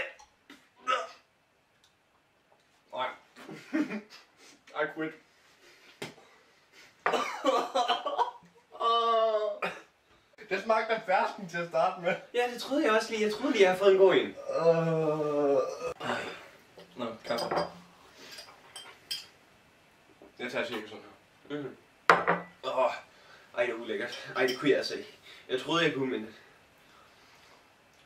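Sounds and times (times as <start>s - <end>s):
man coughing and gagging: 0.8s - 1.3s, 7.0s - 8.3s, 9.4s - 9.9s.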